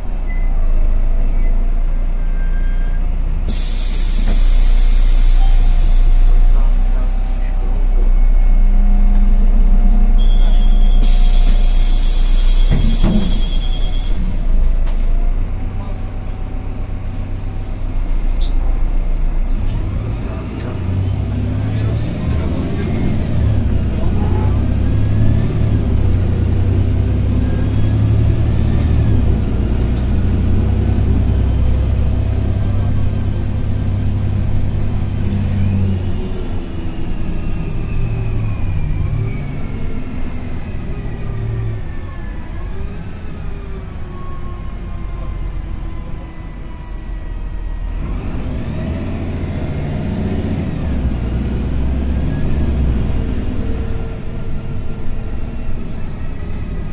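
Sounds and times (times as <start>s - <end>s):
bus diesel engine under load: 0.0s - 56.9s
road rumble: 0.0s - 56.9s.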